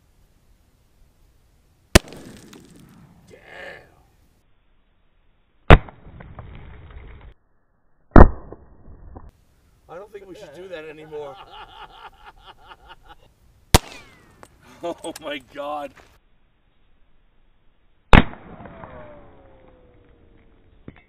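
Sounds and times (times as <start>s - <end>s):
rifle shots: 1.9s - 3.2s, 13.7s - 14.3s, 18.1s - 19.6s.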